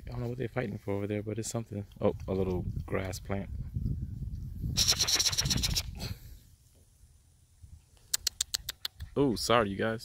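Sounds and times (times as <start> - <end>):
person making mouth clicks: 4.8 - 6.0, 8.0 - 9.2.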